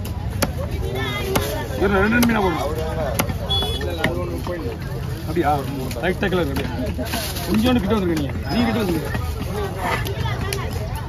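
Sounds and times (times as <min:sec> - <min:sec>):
people talking: 0:00.1 - 0:11.0
cleaver striking chopping block: 0:03.1 - 0:03.4.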